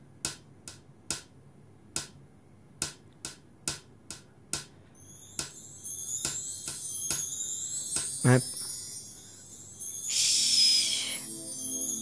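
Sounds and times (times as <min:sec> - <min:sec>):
high shimmering music tones: 0:05.0 - 0:12.0.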